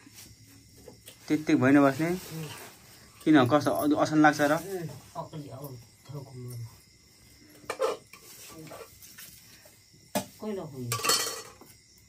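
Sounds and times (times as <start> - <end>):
metal spatula scraping a pot: 7.6 - 9.0.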